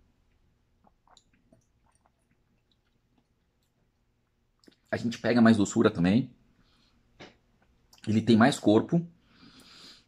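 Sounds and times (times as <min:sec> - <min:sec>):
wet mouth clicks: 0:00.8 - 0:03.8.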